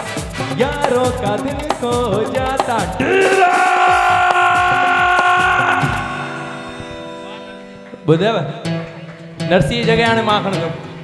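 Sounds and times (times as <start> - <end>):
keyboard chords: 0.0 - 11.0
held sung note: 3.0 - 7.9.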